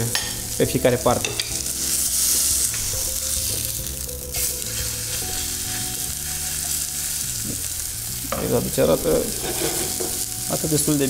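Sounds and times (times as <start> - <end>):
meat sizzling in a frying pan: 0.0 - 11.0.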